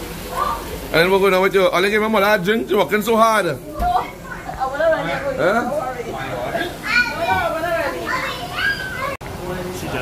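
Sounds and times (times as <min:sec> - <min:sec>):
high-pitched voices calling out: 0:06.8 - 0:09.2.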